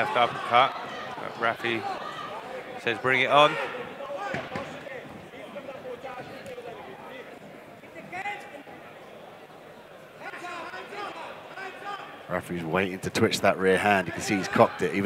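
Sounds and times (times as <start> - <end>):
indistinct crowd voices: 0.0 - 15.0.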